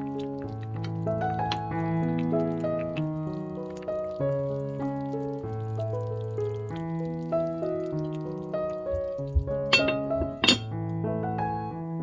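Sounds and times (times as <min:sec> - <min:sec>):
background music: 0:00.0 - 0:12.0
glass lid clinking on pan: 0:09.7 - 0:10.7.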